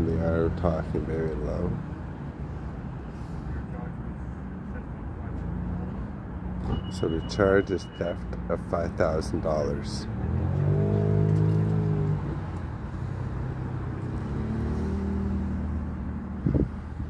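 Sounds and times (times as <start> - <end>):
car passing by: 10.0 - 17.0.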